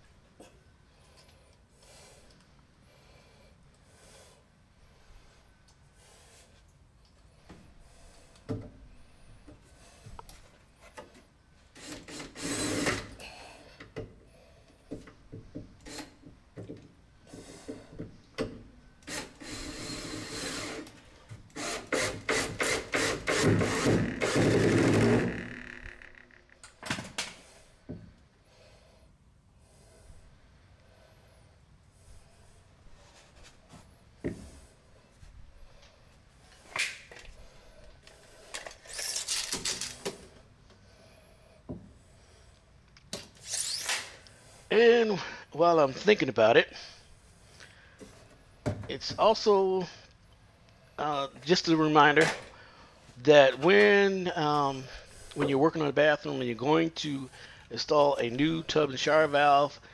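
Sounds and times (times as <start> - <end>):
loud rasping burst: 11.8 - 13.1, 19.0 - 20.9, 21.6 - 26.4
creaks and knocks on wood: 24.0 - 27.2.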